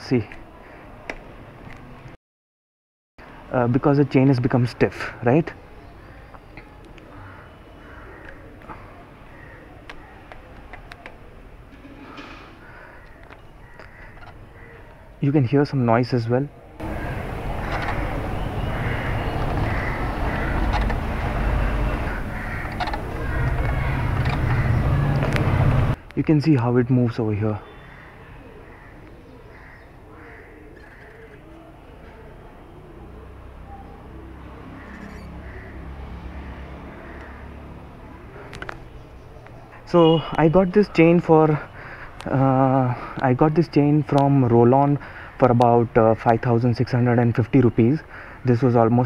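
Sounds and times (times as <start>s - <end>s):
crows cawing: 7.0s - 10.6s, 11.9s - 15.2s, 16.8s - 26.0s, 27.6s - 31.4s, 34.6s - 39.0s, 41.5s - 43.2s, 45.0s - 45.5s, 48.0s - 48.4s
pigeon cooing: 16.8s - 25.8s, 27.8s - 35.7s.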